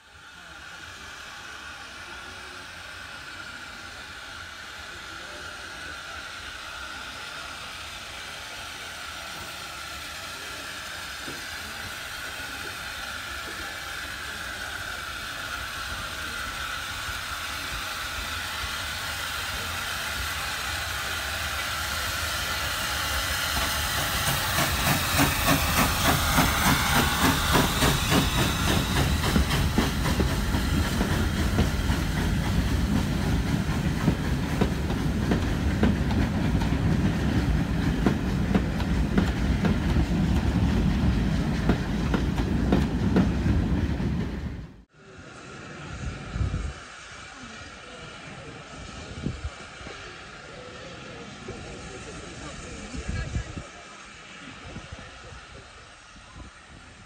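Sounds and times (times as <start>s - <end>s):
steam hissing: 0.0s - 57.0s.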